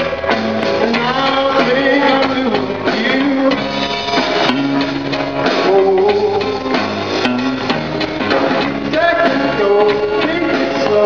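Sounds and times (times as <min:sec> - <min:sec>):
live band with guitar and drums: 0:00.0 - 0:11.0
man singing: 0:00.6 - 0:04.0, 0:05.4 - 0:07.7, 0:08.7 - 0:11.0.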